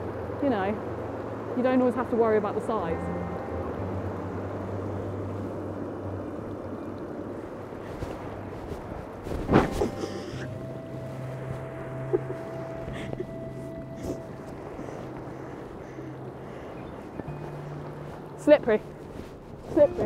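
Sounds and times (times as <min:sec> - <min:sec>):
low held tones: 0:02.0 - 0:08.7, 0:09.5 - 0:20.0
wind blowing on microphone: 0:04.6 - 0:20.0.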